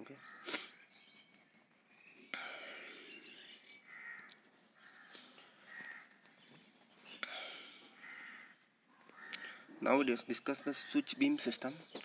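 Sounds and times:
faint bird calls: 0.0 - 9.8.

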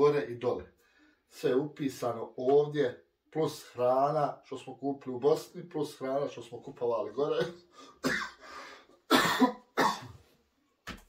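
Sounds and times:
man coughing: 7.3 - 8.5, 9.1 - 10.2.

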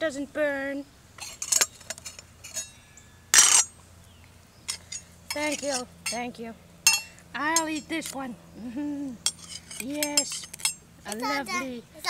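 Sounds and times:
metallic clatter: 1.2 - 3.7.

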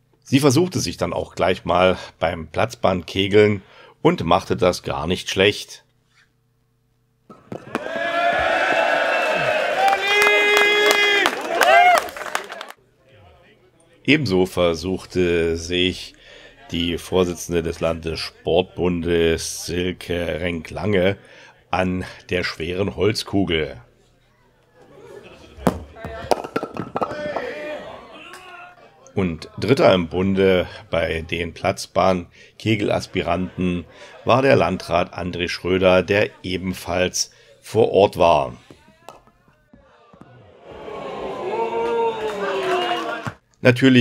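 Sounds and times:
wooden ball crashing into pins: 7.3 - 8.0, 25.6 - 27.6
crowd cheering: 7.3 - 12.8, 24.8 - 28.9, 39.7 - 43.4.

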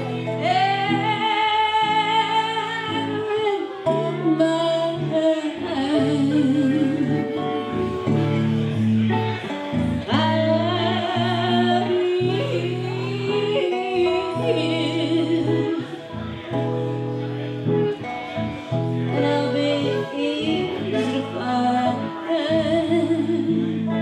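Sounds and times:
strummed electric guitar chords: 0.0 - 24.0.

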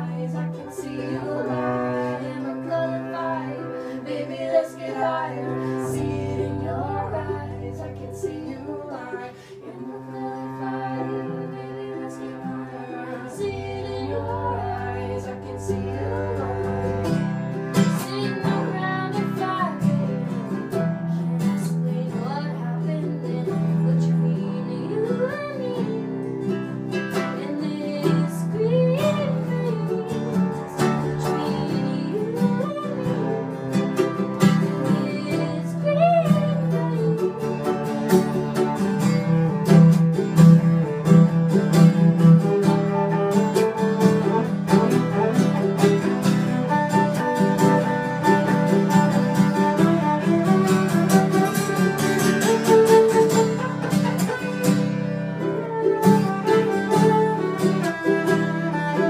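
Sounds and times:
bowed cello low notes: 0.0 - 24.9, 28.1 - 59.0
sliding melodic phrases: 0.0 - 24.9, 28.1 - 59.0
acoustic guitars strumming: 0.0 - 59.0.

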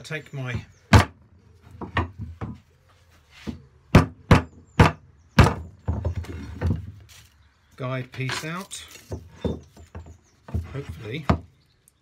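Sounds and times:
wood rubbing and handling: 0.4 - 3.9, 5.4 - 12.0.

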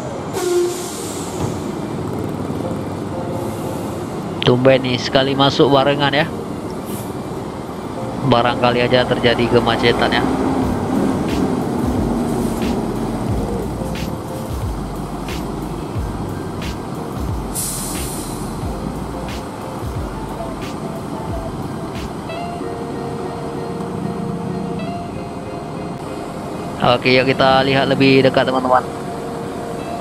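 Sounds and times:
bus diesel engines idling: 0.0 - 30.0
air release hiss: 0.3 - 1.8, 11.1 - 19.7.

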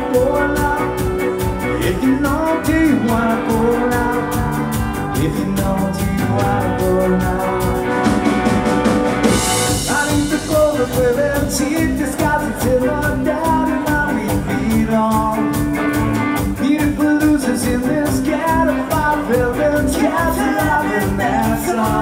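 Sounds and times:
ska band playing: 0.0 - 22.0.

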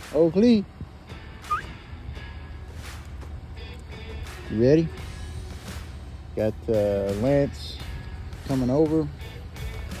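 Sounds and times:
short rising squeak: 1.4 - 1.8.

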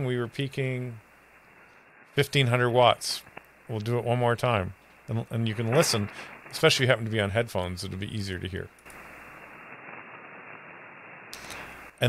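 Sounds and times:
radio receiver hiss: 0.0 - 12.0.

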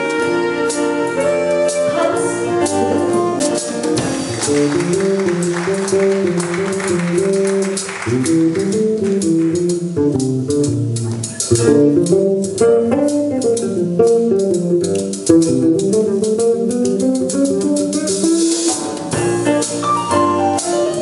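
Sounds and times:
drum kit cymbal pattern: 0.0 - 21.0
electric bass jazz solo: 0.0 - 21.0.

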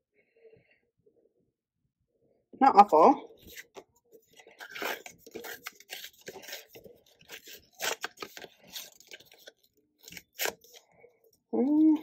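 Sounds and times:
paper being torn by hand: 4.6 - 10.8.

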